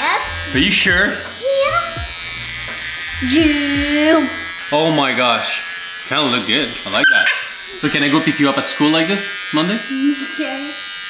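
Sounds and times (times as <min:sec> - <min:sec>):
electric shaver buzzing: 0:00.0 - 0:11.0.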